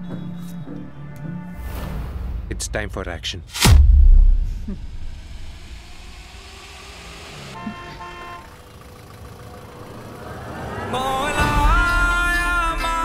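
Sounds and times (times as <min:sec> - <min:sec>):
deep boom: 0:03.6 - 0:06.4
street traffic: 0:05.3 - 0:13.0
vehicle horn: 0:07.4 - 0:09.0.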